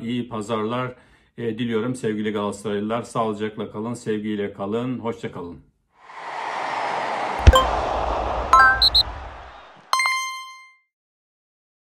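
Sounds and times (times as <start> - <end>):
whoosh: 6.0 - 9.9
sharp low hit: 6.6 - 9.8.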